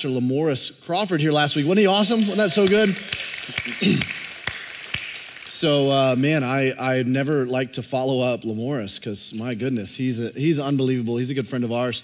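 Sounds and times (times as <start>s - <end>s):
audience applauding: 1.6s - 6.4s
sharp hand claps: 1.9s - 6.2s.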